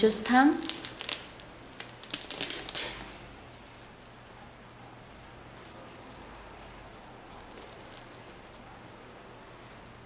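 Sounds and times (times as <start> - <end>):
velcro patch ripping off: 0.6 - 3.9, 7.4 - 8.4.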